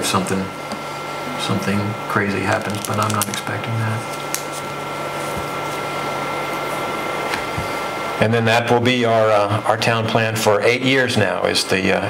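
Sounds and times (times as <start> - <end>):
room hiss and hum: 0.0 - 12.0.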